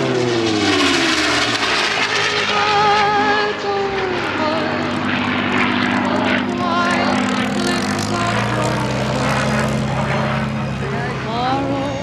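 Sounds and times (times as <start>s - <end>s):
propeller plane droning overhead: 0.0s - 12.0s.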